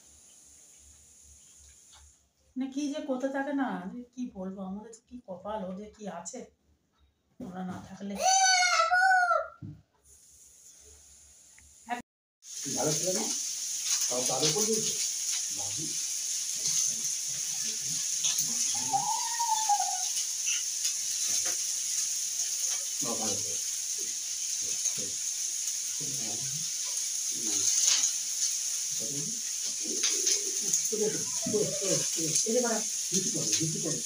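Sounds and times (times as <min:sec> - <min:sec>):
steady hiss: 0:00.0 - 0:02.3, 0:10.0 - 0:34.0.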